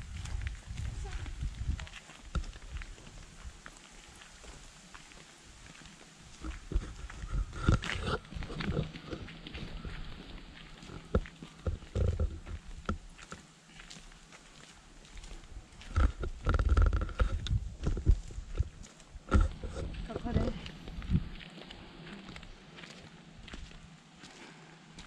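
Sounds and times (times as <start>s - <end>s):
wind buffeting microphone: 0.0s - 3.6s, 6.3s - 13.0s, 15.5s - 21.5s
footsteps on dirt path: 0.0s - 25.0s.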